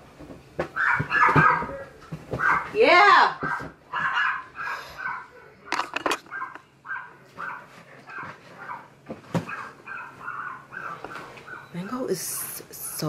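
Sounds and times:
dog barking: 0:00.8 - 0:02.8, 0:03.4 - 0:05.4, 0:06.2 - 0:11.8
dog whining: 0:00.8 - 0:05.5, 0:06.2 - 0:11.8.

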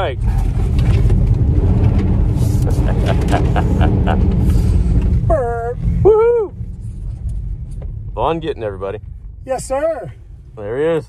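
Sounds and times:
road and tyre rumble: 0:00.0 - 0:11.0
person whooping: 0:06.0 - 0:06.5.

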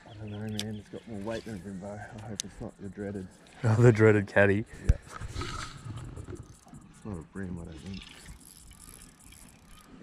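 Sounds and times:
fishing reel whirring and clicking: 0:05.0 - 0:07.1, 0:07.8 - 0:10.0.

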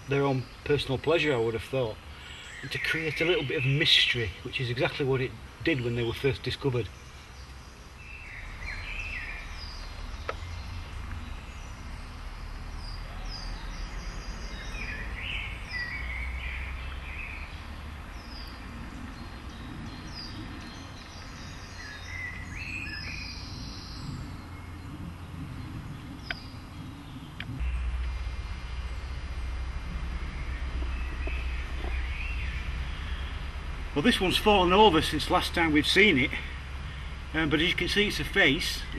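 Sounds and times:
steady low rumble: 0:00.0 - 0:38.9
woodland birds singing: 0:00.0 - 0:38.9
faint clicks: 0:26.2 - 0:26.5.

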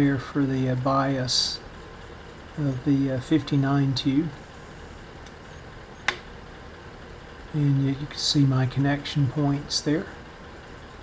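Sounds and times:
test probe click: 0:06.0 - 0:06.3.

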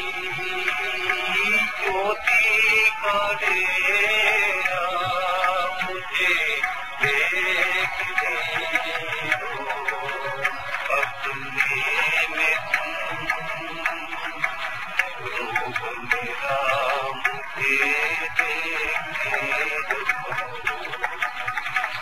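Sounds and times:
light percussion beat: 0:00.0 - 0:22.0.

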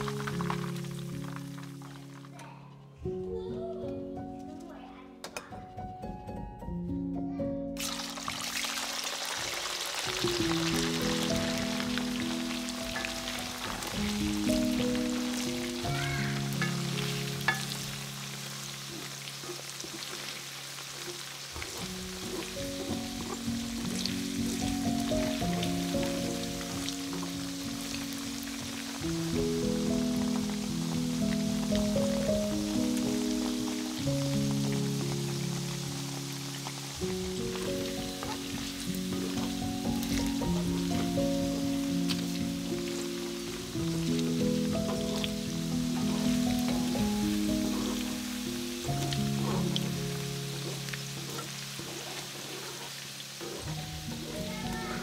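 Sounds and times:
chicken sizzling in hot oil: 0:00.0 - 0:02.5, 0:07.8 - 0:55.0
melodic background music: 0:00.0 - 0:20.3, 0:21.6 - 0:55.0.

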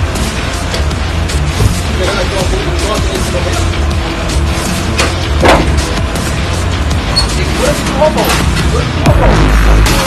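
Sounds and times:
music with heavy bass: 0:00.0 - 0:10.0.

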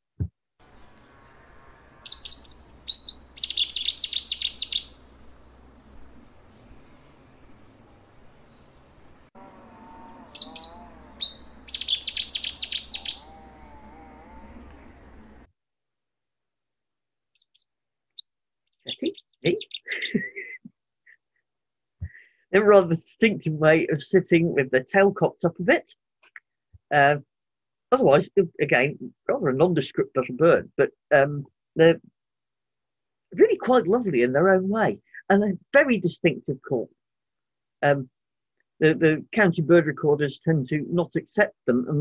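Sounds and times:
warbler singing: 0:00.6 - 0:15.5, 0:17.4 - 0:20.4.

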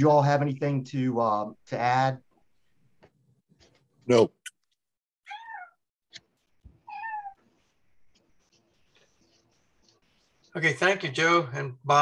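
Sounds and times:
cat meowing: 0:05.3 - 0:05.8, 0:06.8 - 0:07.4.

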